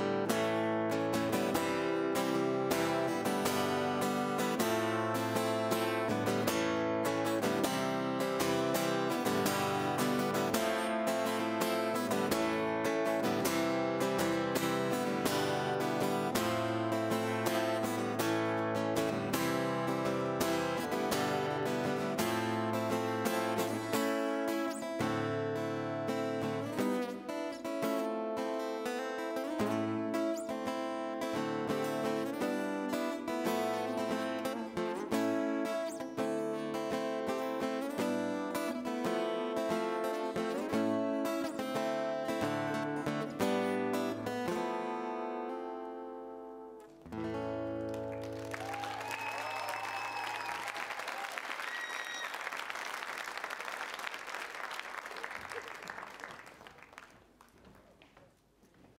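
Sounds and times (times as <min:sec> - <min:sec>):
acoustic guitar picking and strumming: 0:00.0 - 0:48.6
audience applause and cheering: 0:47.9 - 0:57.5.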